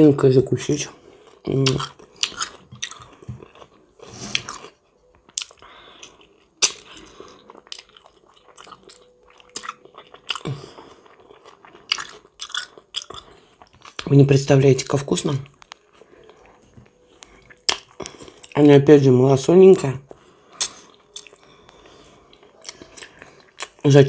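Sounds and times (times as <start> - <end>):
wet chewing and lip smacking: 1.2 - 14.1, 15.4 - 18.6, 20.5 - 23.8.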